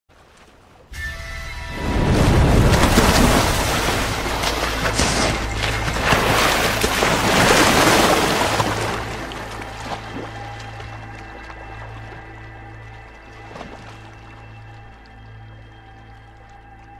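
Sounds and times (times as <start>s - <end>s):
heavy water splashing: 0.1s - 16.9s
background music with low drone: 0.9s - 16.9s.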